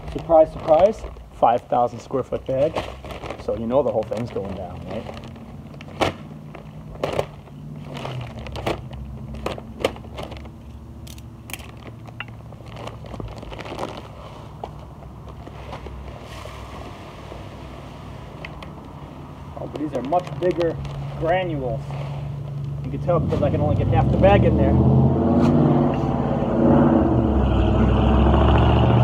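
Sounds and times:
paper bag crackling: 0.0 - 17.4, 18.6 - 23.5.

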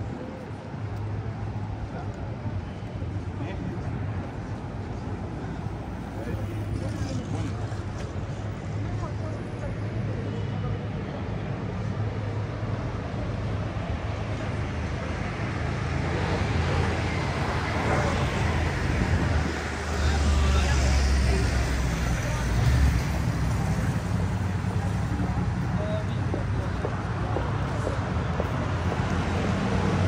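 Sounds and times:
passers-by talking: 0.0 - 30.0
passing cars and buses: 0.0 - 30.0.

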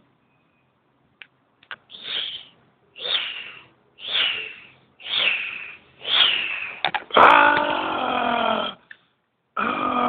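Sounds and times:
person screeching: 5.0 - 8.8
person growling like a dragon: 7.1 - 8.8, 9.6 - 10.0.

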